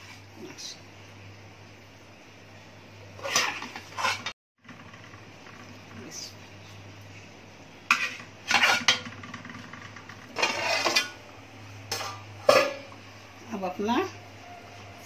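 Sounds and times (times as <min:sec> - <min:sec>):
metal spoon scraping metal pan: 0:03.2 - 0:04.3, 0:07.9 - 0:09.2, 0:10.4 - 0:11.2, 0:11.9 - 0:12.9.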